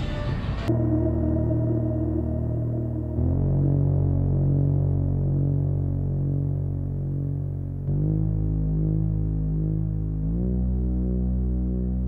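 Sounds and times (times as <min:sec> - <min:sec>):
sustained synth chords: 0:00.7 - 0:12.0.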